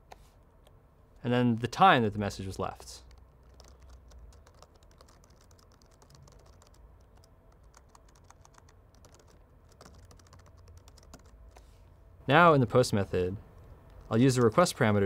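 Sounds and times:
typing on computer keyboard: 0:03.1 - 0:11.4, 0:13.6 - 0:14.7.

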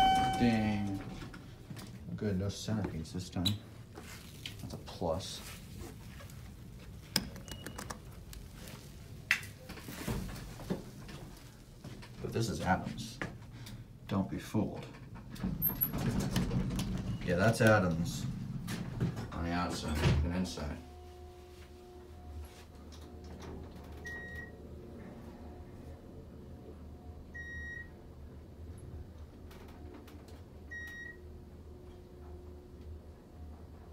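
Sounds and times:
elevator button clicks: 0:00.0 - 0:01.0
short high beep: 0:00.0 - 0:01.0
elevator beep: 0:00.0 - 0:01.2, 0:24.0 - 0:24.6, 0:27.3 - 0:28.0, 0:30.7 - 0:31.2
elevator hum: 0:00.0 - 0:01.8, 0:15.0 - 0:20.0, 0:20.8 - 0:33.9.

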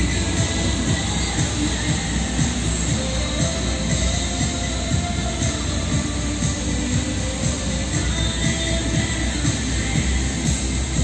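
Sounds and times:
fountain water jets rushing: 0:00.0 - 0:11.0
music over loudspeakers: 0:00.0 - 0:11.0.

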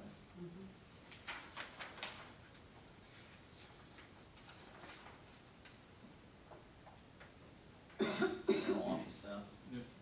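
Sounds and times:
paper rustling: 0:01.0 - 0:05.8.

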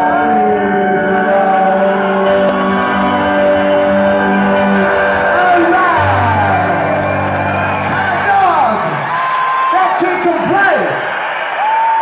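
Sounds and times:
organ sustained chord: 0:00.0 - 0:09.1.

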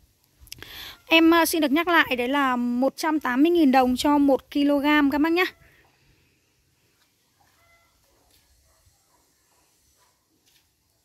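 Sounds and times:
faint short tones: 0:07.4 - 0:08.0.

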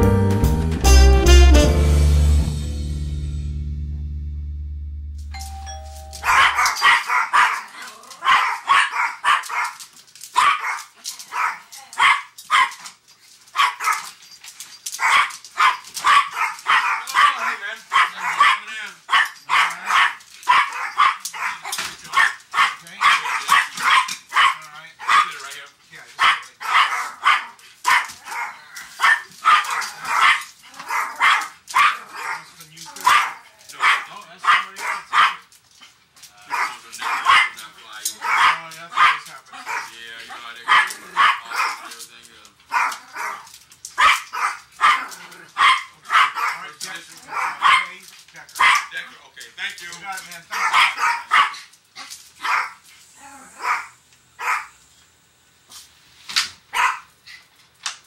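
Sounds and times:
dogs barking: 0:06.2 - 0:09.8, 0:10.4 - 0:12.9, 0:13.6 - 0:14.2, 0:15.0 - 0:25.5, 0:26.2 - 0:35.5, 0:36.4 - 0:42.0, 0:42.7 - 0:49.0, 0:50.4 - 0:51.7, 0:52.4 - 0:52.8, 0:53.4 - 0:54.8, 0:56.7 - 0:57.1.

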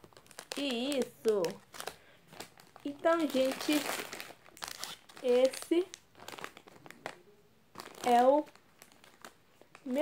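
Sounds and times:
plastic packets crinkling: 0:00.0 - 0:10.0.

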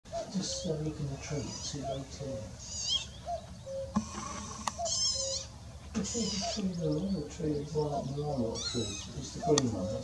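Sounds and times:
cuckoo calling: 0:00.1 - 0:10.0
small birds twittering: 0:00.1 - 0:10.0.

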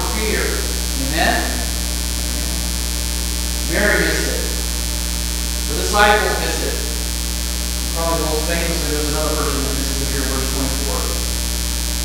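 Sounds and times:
man's voice: 0:00.0 - 0:02.8, 0:03.6 - 0:04.6, 0:05.7 - 0:07.1, 0:07.9 - 0:11.3
electrical mains hum: 0:00.0 - 0:12.0.

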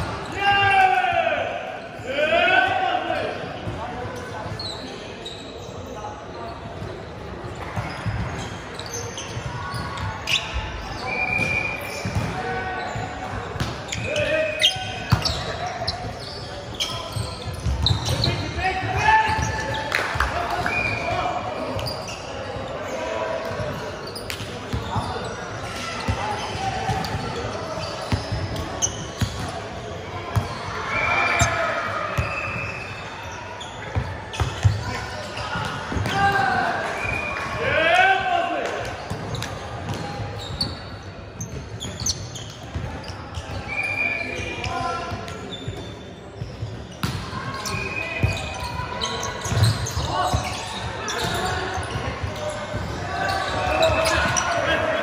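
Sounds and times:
players shouting: 0:30.4 - 0:32.8, 0:47.3 - 0:55.0.

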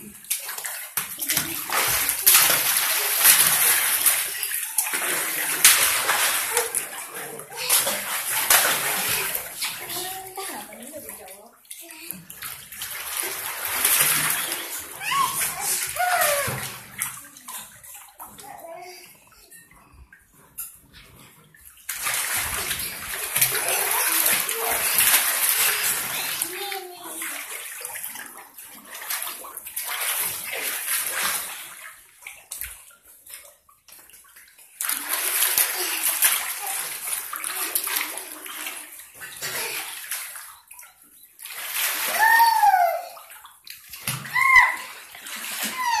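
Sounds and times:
water sloshing and splashing: 0:00.0 - 0:46.0
child's high voice: 0:07.5 - 0:08.0, 0:09.7 - 0:10.8, 0:11.8 - 0:12.2, 0:14.9 - 0:17.4, 0:18.4 - 0:19.2, 0:23.6 - 0:25.0, 0:25.6 - 0:27.5, 0:42.1 - 0:43.3, 0:44.3 - 0:45.0, 0:45.7 - 0:46.0.

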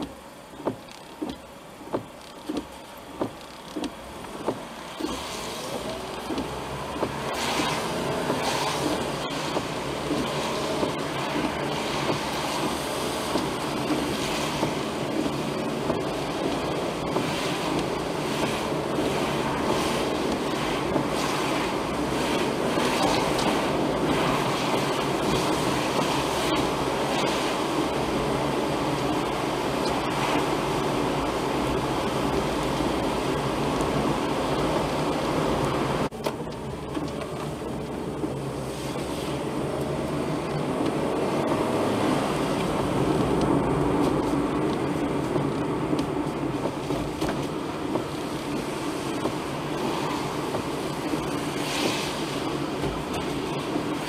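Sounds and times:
car tyres on wet road: 0:00.0 - 0:54.0.

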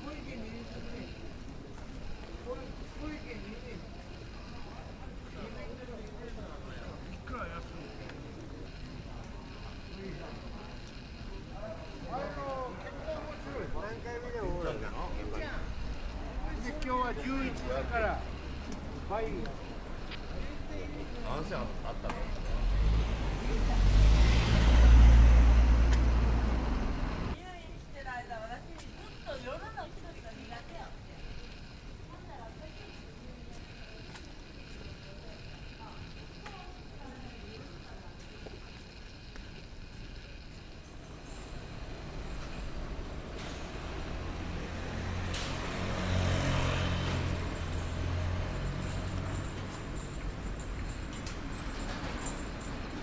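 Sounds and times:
urban background noise: 0:00.0 - 0:53.0
car passing close by: 0:22.6 - 0:27.4, 0:43.4 - 0:49.2.

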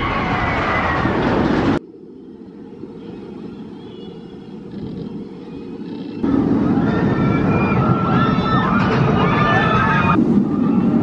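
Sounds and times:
muffled rumble: 0:00.0 - 0:11.0
roller coaster rumbling on track: 0:00.0 - 0:11.0.

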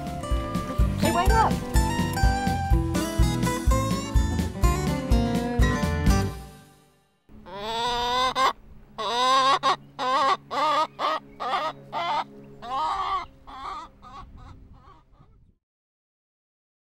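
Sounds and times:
hen cackling: 0:07.3 - 0:15.4.

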